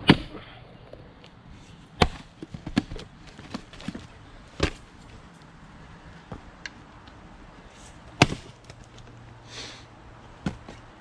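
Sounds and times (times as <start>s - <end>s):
axe splitting a log: 0.0s - 0.4s, 2.0s - 4.0s, 4.6s - 4.9s, 8.1s - 8.9s.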